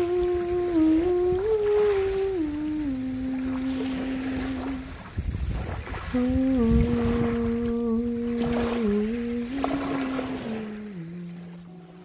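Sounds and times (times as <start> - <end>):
woman humming a slow melody: 0.0 - 5.2, 5.9 - 12.0
low rumbling water surge: 0.0 - 12.0
sea waves: 0.0 - 12.0.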